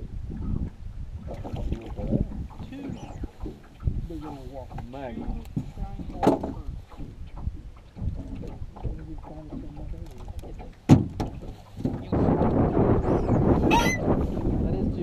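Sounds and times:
water lapping against boat: 0:00.0 - 0:15.0
wind on microphone: 0:00.0 - 0:15.0.

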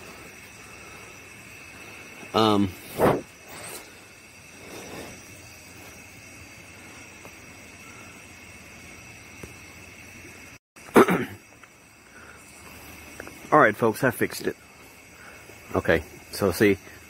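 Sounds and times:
low hiss: 0:00.0 - 0:17.0
night insects chirring: 0:00.0 - 0:17.0.

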